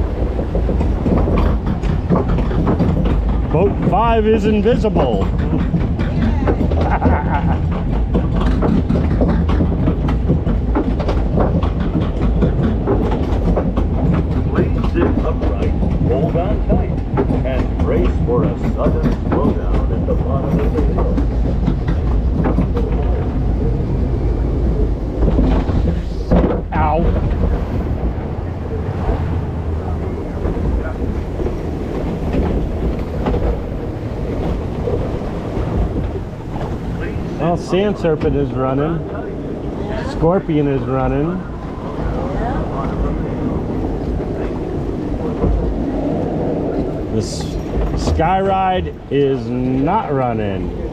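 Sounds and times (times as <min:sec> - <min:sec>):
conveyor clattering rattle: 0:00.0 - 0:50.9
steady low drone: 0:00.0 - 0:50.9.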